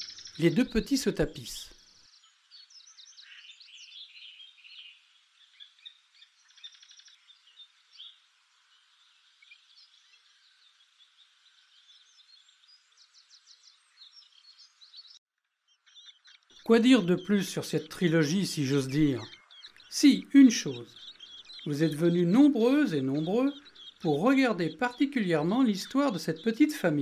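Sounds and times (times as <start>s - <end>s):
blackbird alarm calls: 0.0s - 27.0s.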